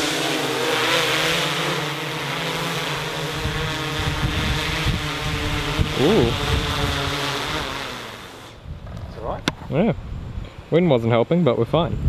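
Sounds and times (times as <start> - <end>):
drone rotors humming: 0.0 - 9.5
wind gusts on microphone: 3.3 - 7.8, 8.5 - 10.6, 11.6 - 12.0.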